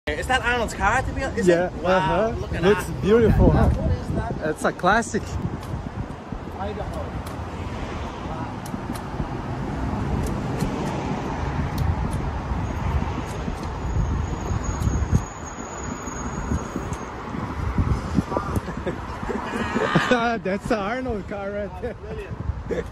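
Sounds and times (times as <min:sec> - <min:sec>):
city street traffic: 0:00.1 - 0:22.9
wind buffeting microphone: 0:00.7 - 0:22.9.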